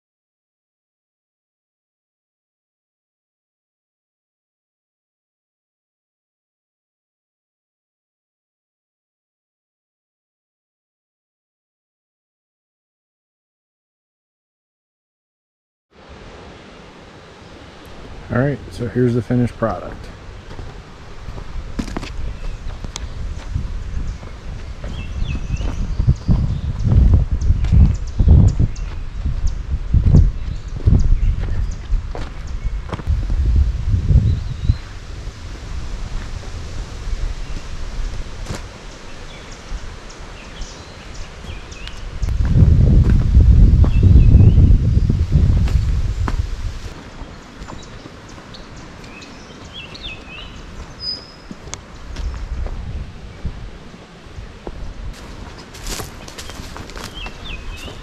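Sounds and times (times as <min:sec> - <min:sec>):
faint birds chirping: 0:16.4 - 0:33.0, 0:37.3 - 0:58.0
wind buffeting microphone: 0:17.5 - 0:58.0
footsteps on loose dirt: 0:19.8 - 0:33.6, 0:37.4 - 0:39.4, 0:40.8 - 0:53.6, 0:54.6 - 0:58.0.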